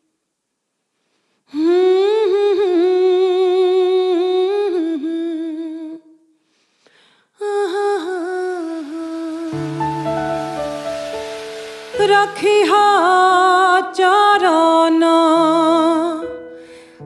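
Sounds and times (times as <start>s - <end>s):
woman singing unaccompanied: 1.5s - 6.2s, 7.4s - 10.6s, 11.9s - 16.4s.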